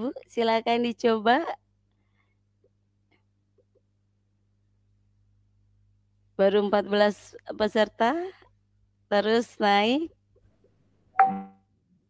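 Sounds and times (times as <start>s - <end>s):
short electronic chime: 11.2s - 11.6s.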